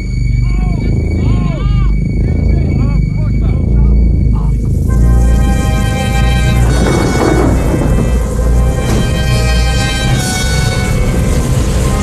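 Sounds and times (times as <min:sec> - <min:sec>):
deep rumble with rushing hiss: 0:00.0 - 0:12.0
orchestral film score: 0:00.0 - 0:12.0.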